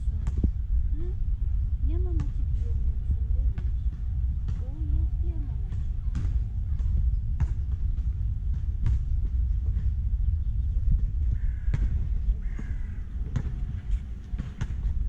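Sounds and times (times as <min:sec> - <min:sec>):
low rumble: 0:00.0 - 0:15.0.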